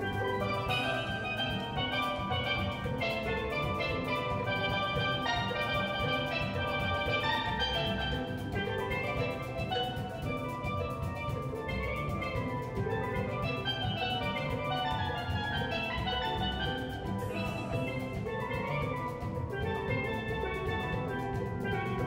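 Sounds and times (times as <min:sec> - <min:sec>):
steady drum beat: 0:00.0 - 0:22.0
steel pans playing fast runs: 0:00.0 - 0:22.0.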